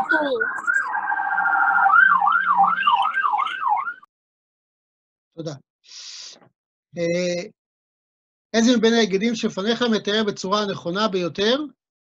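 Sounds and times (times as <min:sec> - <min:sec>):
warbling electronic alarm: 0:00.0 - 0:04.1.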